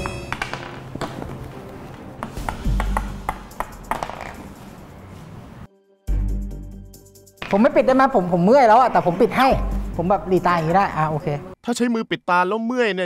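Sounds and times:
background music: 0.0s - 11.6s.

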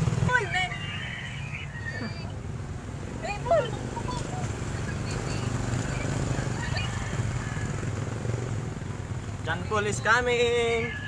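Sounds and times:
faint voices: 0.0s - 8.2s
engine running: 0.0s - 11.0s.

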